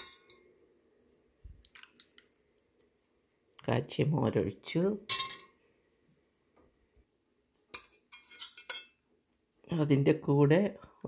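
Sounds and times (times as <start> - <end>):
metal spoon clinking on clay pot: 5.1 - 5.6, 7.8 - 9.0.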